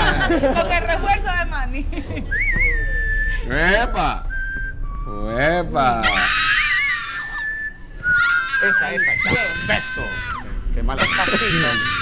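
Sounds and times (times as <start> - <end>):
person squealing high-pitched: 6.0 - 7.6, 8.2 - 12.0.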